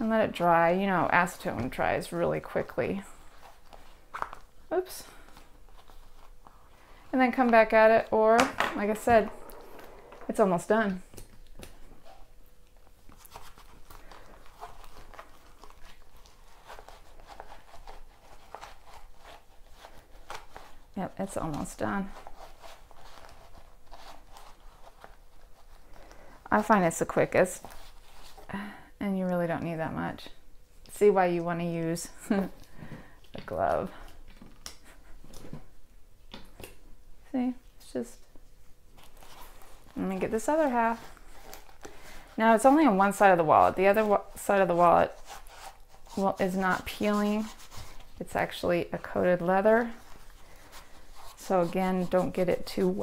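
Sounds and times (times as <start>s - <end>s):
wallet handled with gloves: 1.4s - 28.5s, 37.9s - 53.0s
cotton scratching on lining: 13.2s - 25.8s, 39.0s - 53.0s.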